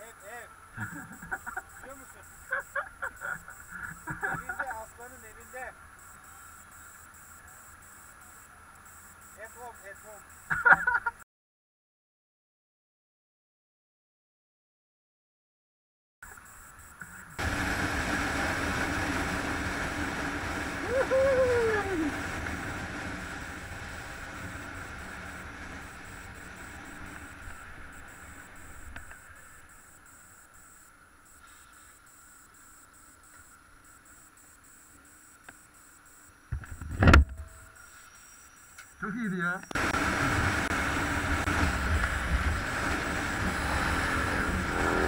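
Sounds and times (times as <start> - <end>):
motorcycle engine running: 17.4 - 30.0, 39.8 - 45.0.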